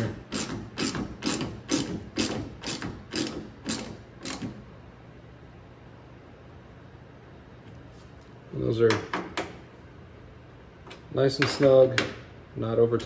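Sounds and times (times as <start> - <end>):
hand ratchet clicking: 0.0 - 4.6.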